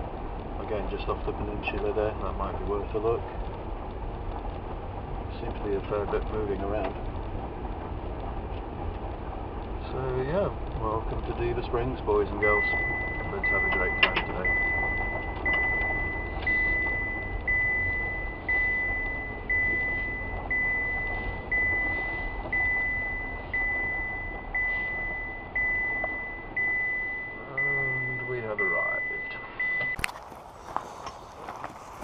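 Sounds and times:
low car hum: 0.0s - 32.0s
car warning chime beeping: 12.1s - 30.1s.

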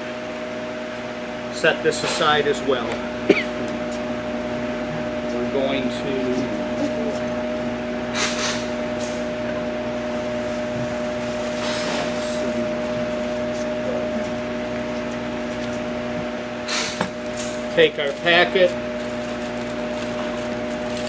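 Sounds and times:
electric motor hum: 2.4s - 21.0s.

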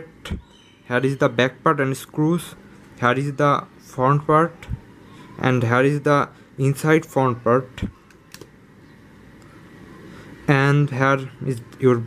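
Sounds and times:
low steady room hiss: 0.0s - 12.0s.

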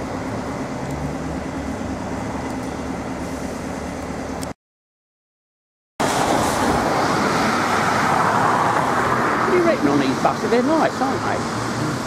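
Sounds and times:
van passing on wet road: 6.0s - 12.0s.

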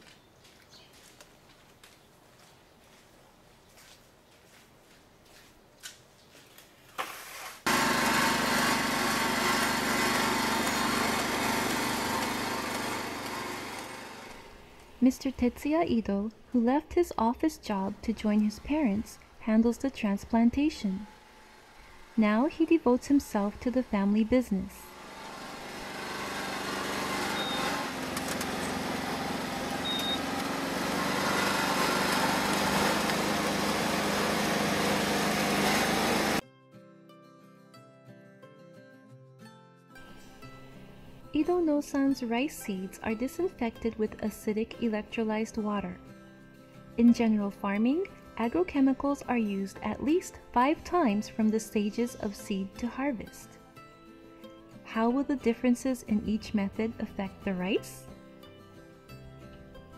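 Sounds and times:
small engine running steadily: 7.7s - 14.6s, 24.8s - 36.4s.

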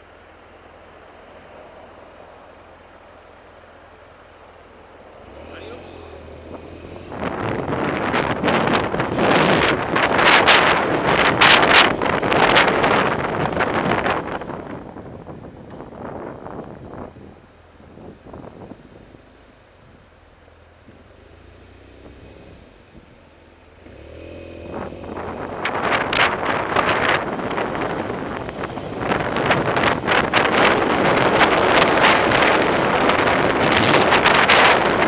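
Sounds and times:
wind buffeting microphone: 6.2s - 20.0s, 24.6s - 35.0s.

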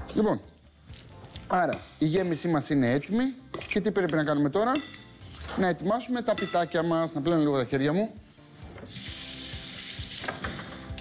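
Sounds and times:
tap water running: 8.9s - 10.7s.

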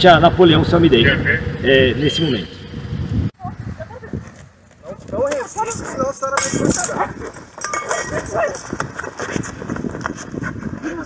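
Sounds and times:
raised voices and cries: 4.9s - 8.9s.

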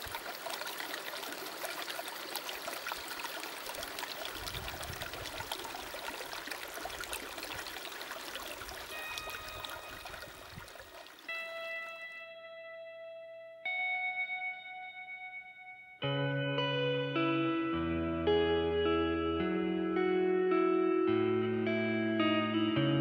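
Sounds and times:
creek running over pebbles: 0.0s - 12.1s
guitar notes ringing: 8.9s - 10.5s, 11.3s - 23.0s.

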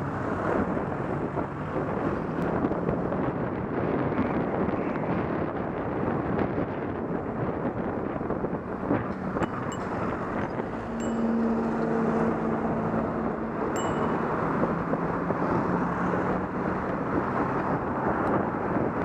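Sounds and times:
car engine hum: 0.0s - 19.0s
wind rushing on microphone: 0.0s - 19.0s.

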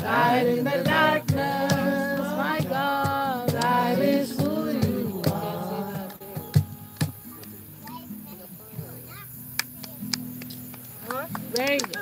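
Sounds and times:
acoustic guitar chords: 0.0s - 10.6s.

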